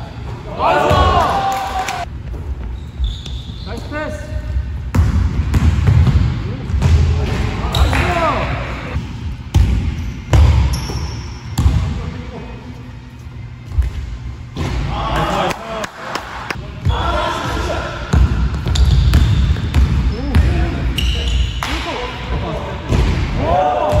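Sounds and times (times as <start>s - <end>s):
sneaker squeaks: 2.4s - 4.3s, 7.6s - 8.0s, 9.9s - 11.7s, 18.6s - 21.8s.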